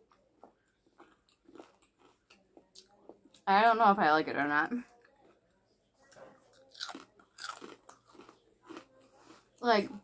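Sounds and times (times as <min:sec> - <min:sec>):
person chewing crunchy food: 0:00.1 - 0:03.0, 0:06.5 - 0:09.6.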